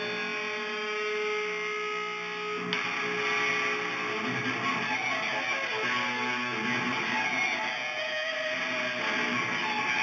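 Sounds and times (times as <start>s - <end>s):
guitar chord picked sharply: 0.0s - 5.1s
electric guitar note ringing: 0.0s - 10.0s.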